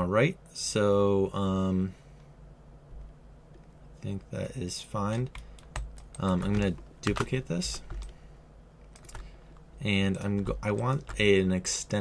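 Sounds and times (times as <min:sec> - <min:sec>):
computer keyboard key clicks: 0:05.1 - 0:08.2, 0:08.9 - 0:11.3.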